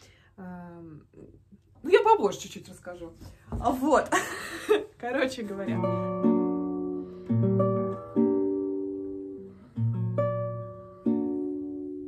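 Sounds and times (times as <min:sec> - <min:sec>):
classical guitar plucked chords: 0:05.4 - 0:12.0.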